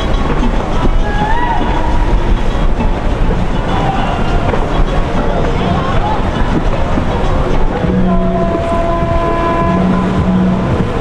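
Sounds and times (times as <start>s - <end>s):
held steady tones: 0.0s - 11.0s
motorboat engines rumbling: 0.0s - 11.0s.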